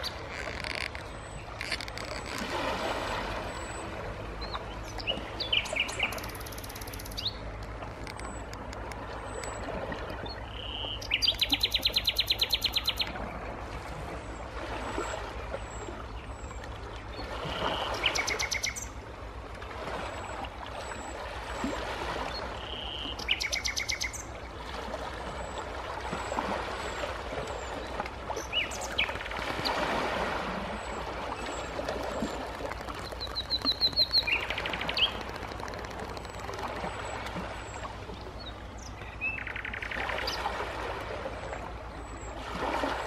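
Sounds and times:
sea waves washing onto rocks: 0:29.4 - 0:37.6
small birds chirping: 0:31.4 - 0:40.4.

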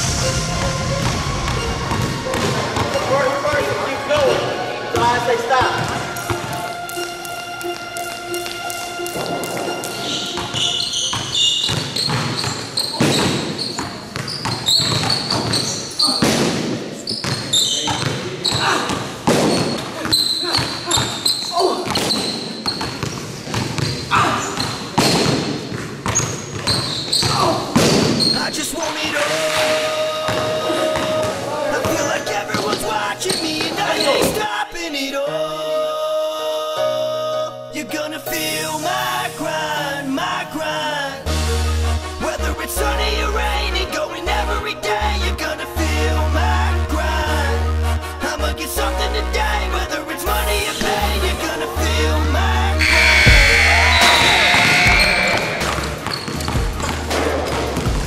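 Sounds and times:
music track: 0:00.0 - 0:11.8, 0:37.9 - 0:57.2
basketball bouncing on gym floor: 0:09.1 - 0:28.3, 0:53.3 - 0:58.0.

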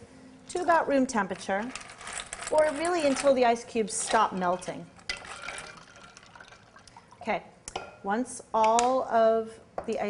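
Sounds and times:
ice swishing in brine: 0:04.1 - 0:07.2.

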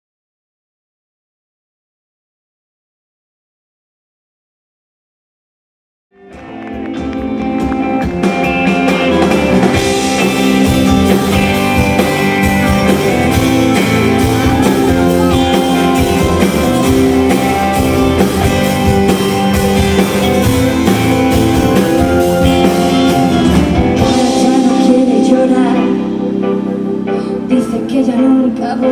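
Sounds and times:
live band with guitars and drums: 0:06.2 - 0:28.9.

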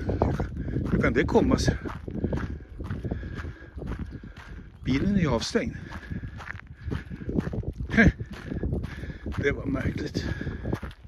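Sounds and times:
footsteps walking: 0:00.0 - 0:11.0.

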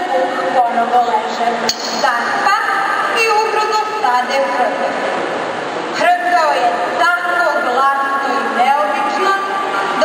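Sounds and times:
woman speaking into a microphone: 0:00.0 - 0:05.0, 0:06.0 - 0:10.0
sharp click: 0:01.7 - 0:02.1.

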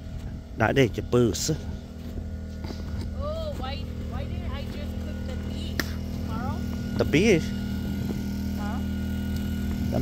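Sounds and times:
motor humming: 0:00.0 - 0:10.0.

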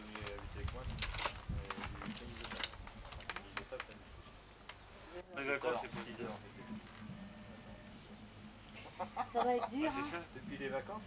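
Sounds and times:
indistinct conversation: 0:00.0 - 0:11.0.

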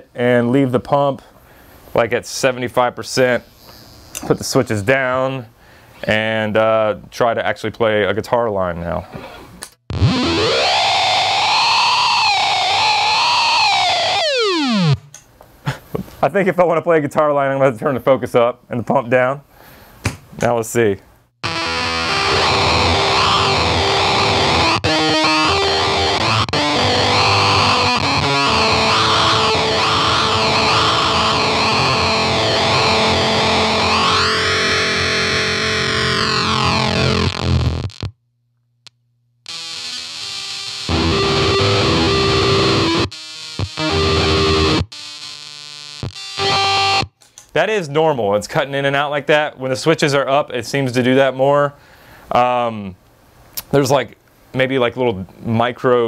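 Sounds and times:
fuzzy electric guitar: 0:09.9 - 0:15.2, 0:21.4 - 0:38.1, 0:39.4 - 0:47.2.

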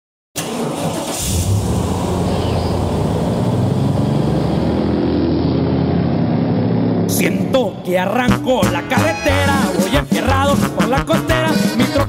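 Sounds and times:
truck engine running: 0:00.7 - 0:07.8.

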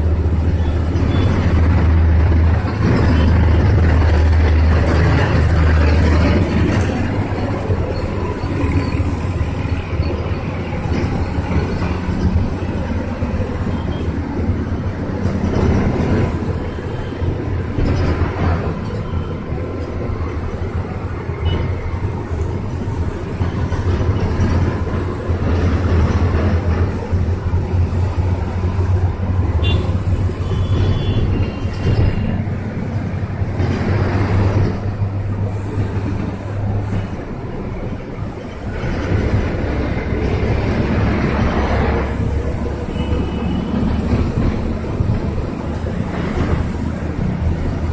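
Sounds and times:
bus engine drone: 0:00.0 - 0:47.9
passing traffic: 0:00.0 - 0:47.9
road and window noise: 0:00.0 - 0:47.9.

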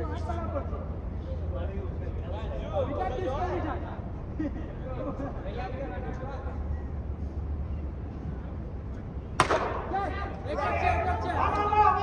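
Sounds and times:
cricket bat striking ball: 0:09.4 - 0:10.4
players shouting: 0:09.4 - 0:12.0.

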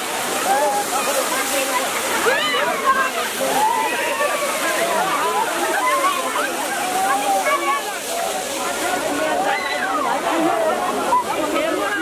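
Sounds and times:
crowd chattering and shouting: 0:00.0 - 0:12.0
water jet gushing and splashing: 0:00.0 - 0:12.0.

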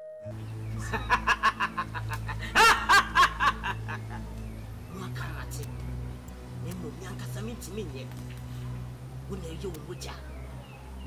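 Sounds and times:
low music drone: 0:00.0 - 0:11.0
man laughing: 0:00.8 - 0:04.2.

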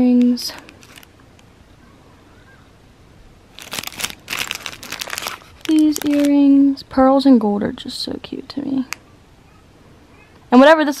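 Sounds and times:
plastic bag crinkling: 0:00.0 - 0:01.1, 0:03.5 - 0:06.4.

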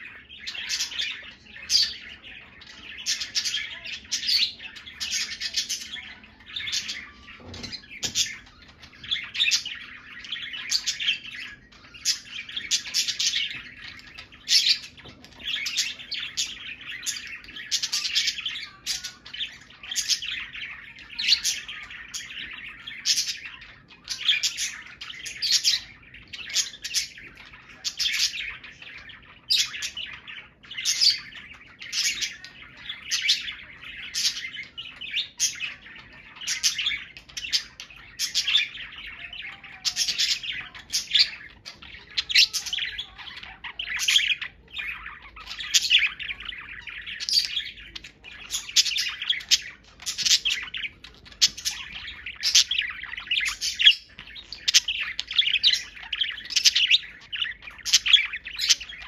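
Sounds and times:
budgerigars chirping: 0:00.0 - 0:59.0.

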